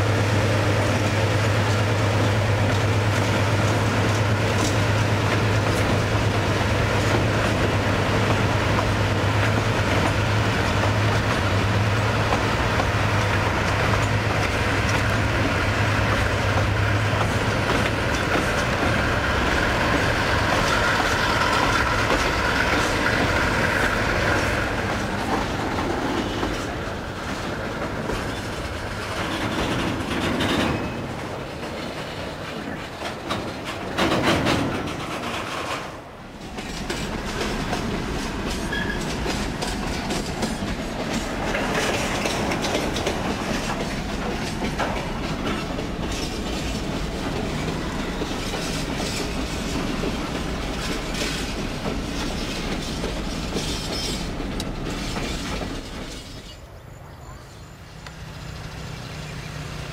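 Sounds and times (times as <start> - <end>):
freight train wheels clacking: 0.0 - 56.7.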